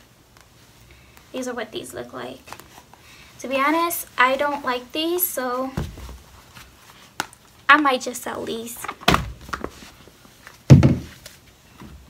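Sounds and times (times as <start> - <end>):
shoes thudding in closet: 5.7 - 6.2, 10.7 - 11.2.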